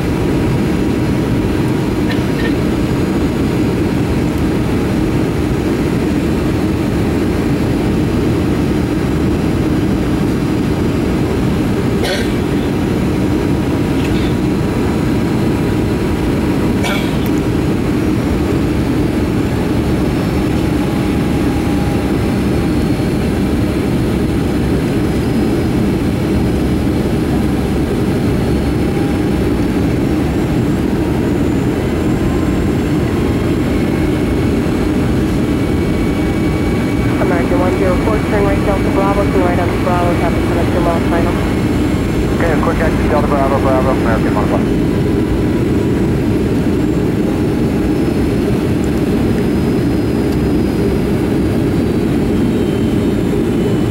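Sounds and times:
airplane cabin low rumble: 0.0s - 53.9s.

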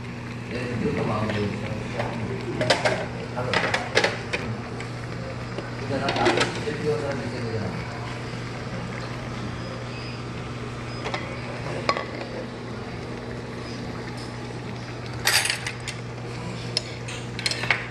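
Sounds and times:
steady low hum: 0.0s - 17.9s
dishes and cutlery clinking: 15.2s - 16.0s, 16.7s - 17.9s
dishes clattering: 15.2s - 16.0s, 16.8s - 17.9s.

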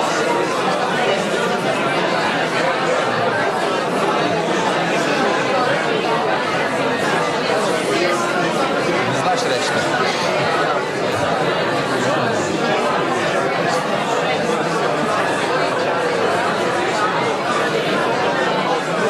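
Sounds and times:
crowd babble: 0.0s - 19.0s.

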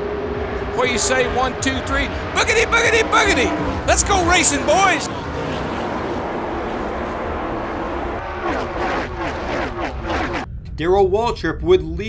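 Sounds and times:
race car engines at full throttle: 0.0s - 10.5s
man talking: 0.7s - 5.1s, 10.8s - 12.0s.

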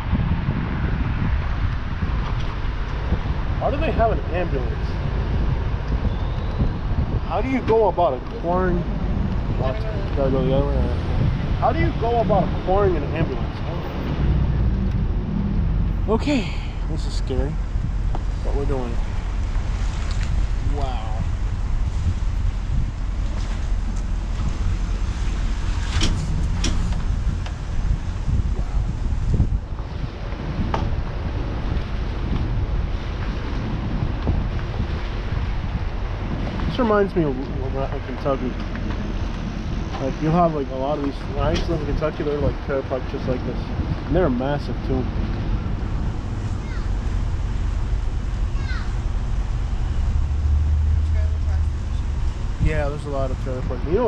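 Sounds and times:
car driving rumble: 0.0s - 54.0s
wind buffeting microphone: 0.0s - 54.0s.

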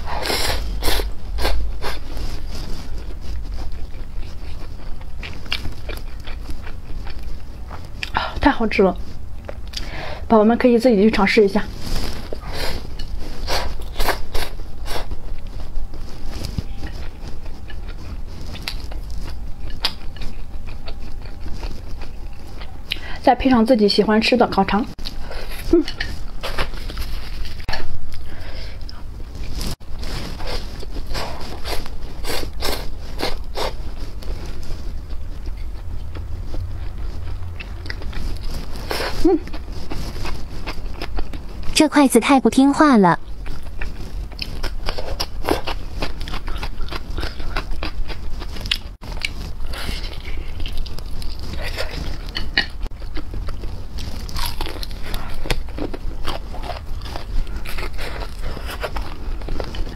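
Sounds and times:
low steady hum: 0.0s - 59.9s
chewing noodles: 0.1s - 8.3s, 11.7s - 23.0s, 24.9s - 41.8s, 43.2s - 59.9s.

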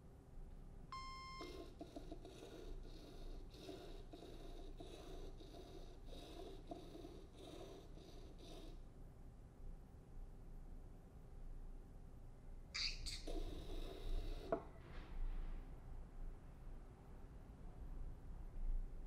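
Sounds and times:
short electronic beep: 0.9s - 1.6s.

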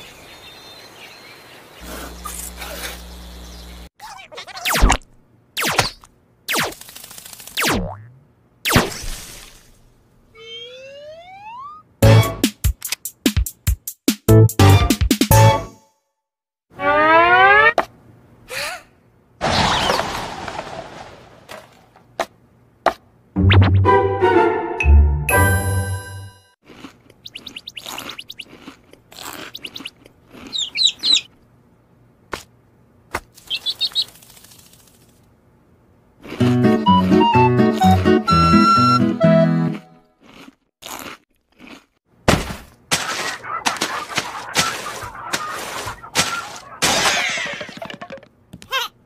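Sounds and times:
cartoon bird chirps: 10.3s - 11.8s, 27.2s - 28.5s, 30.5s - 31.3s
whistle tone gliding upward: 10.4s - 11.8s.

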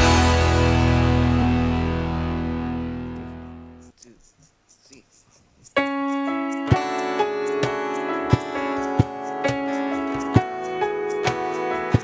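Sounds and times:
distorted guitar chord: 0.0s - 3.8s
theme music: 0.0s - 3.8s.

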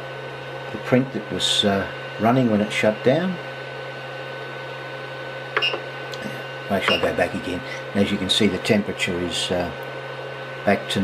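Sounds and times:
printer fans humming with faint whine: 0.0s - 11.0s.

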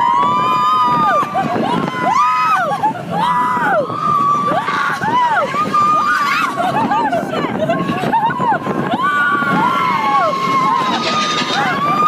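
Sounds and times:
roller coaster rumbling: 0.0s - 12.0s
riders screaming: 9.0s - 12.0s.

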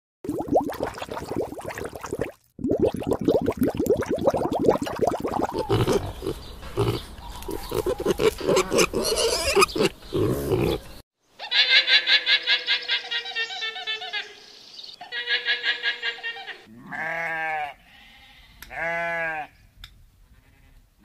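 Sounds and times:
pig grunting: 5.4s - 11.0s
alpacas calling: 5.4s - 14.4s
sheep bleating: 16.7s - 19.6s.

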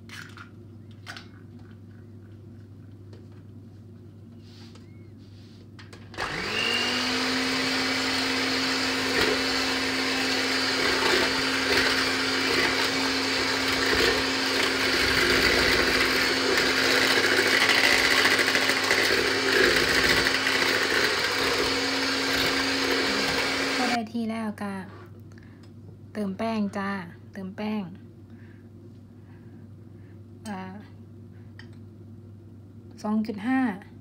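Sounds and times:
electric hand mixer beating: 6.2s - 24.0s.

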